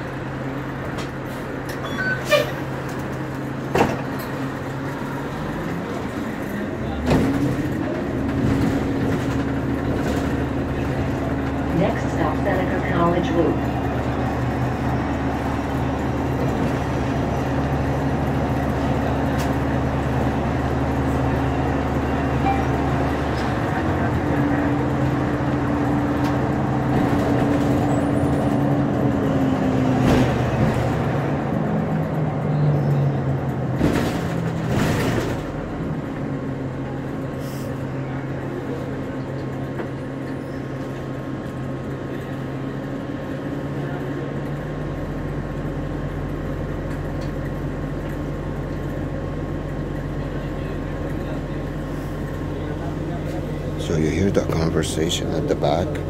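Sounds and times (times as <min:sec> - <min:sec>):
bus engine droning: 0:00.0 - 0:56.0.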